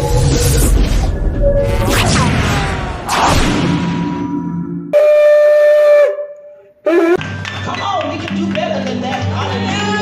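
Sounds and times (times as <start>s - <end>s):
shofar blasts: 5.0s - 7.2s.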